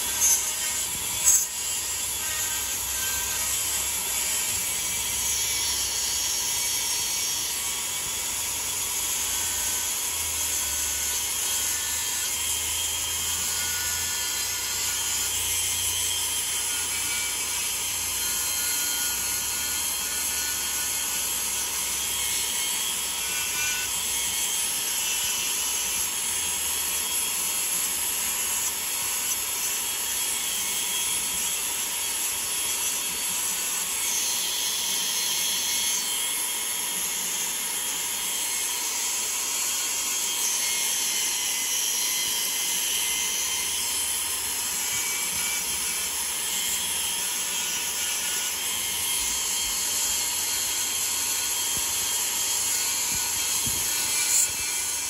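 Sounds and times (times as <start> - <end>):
rotary carving tool grinding: 0.0 - 55.0.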